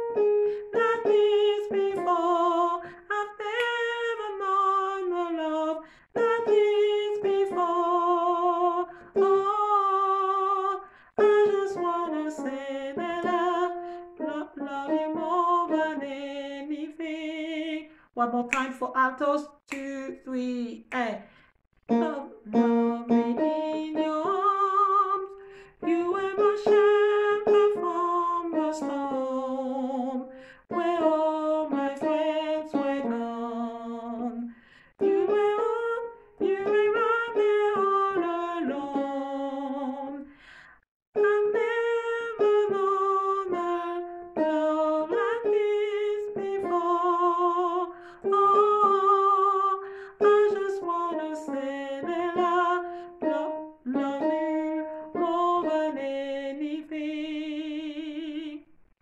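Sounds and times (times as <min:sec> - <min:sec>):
woman singing: 0:00.0 - 0:21.3, 0:21.9 - 0:40.4, 0:41.2 - 0:58.8.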